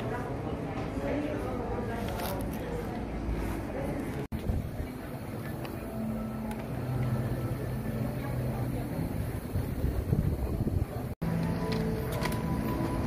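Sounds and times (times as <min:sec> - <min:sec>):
faint background voices: 0:00.0 - 0:12.5.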